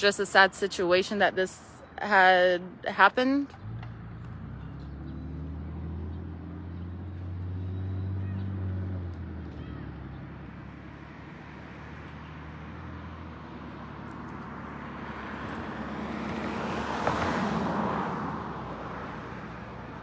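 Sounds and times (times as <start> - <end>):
vehicle passing by: 3.5 - 20.0.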